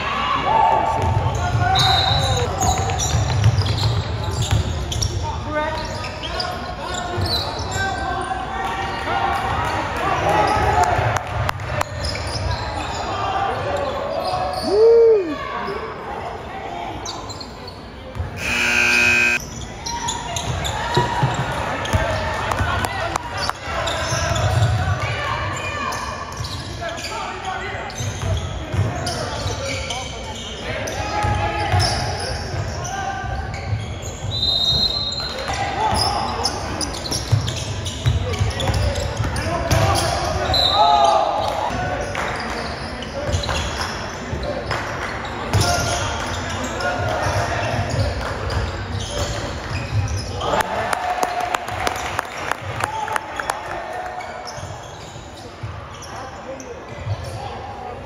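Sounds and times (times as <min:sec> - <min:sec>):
crowd talking in echoing hall: 0:00.0 - 0:58.0
sneaker squeaking: 0:01.1 - 0:07.8, 0:17.0 - 0:22.1, 0:33.4 - 0:40.8, 0:47.0 - 0:50.4, 0:54.3 - 0:57.6
buzzer: 0:18.4 - 0:19.4
high whistle: 0:18.4 - 0:19.4.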